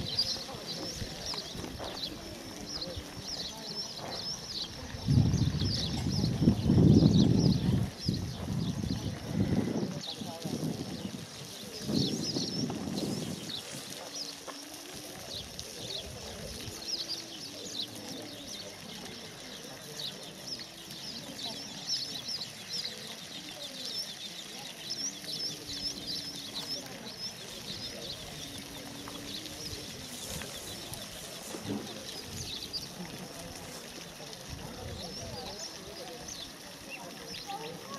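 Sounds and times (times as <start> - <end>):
small birds chirping: 0.0 - 37.9.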